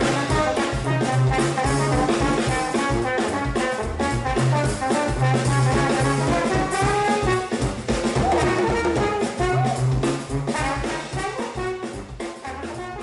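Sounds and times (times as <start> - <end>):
jazz band music: 0.0 - 13.0.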